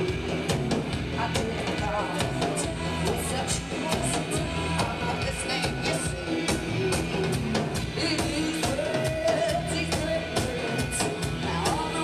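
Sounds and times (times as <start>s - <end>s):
drums beating: 0.0s - 12.0s
live rock band playing: 0.0s - 12.0s.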